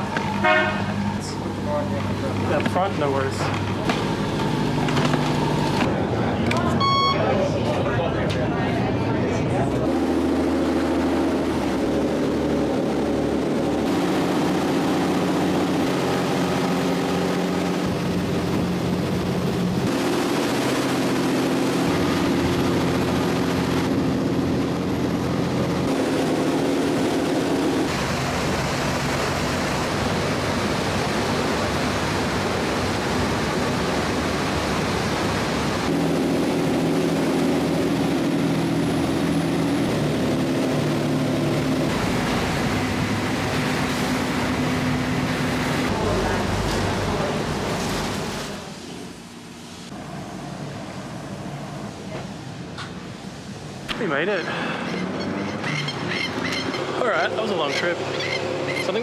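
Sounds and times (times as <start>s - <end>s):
rushing water: 0.0s - 6.2s, 9.8s - 59.0s
ferry engines running: 0.0s - 59.0s.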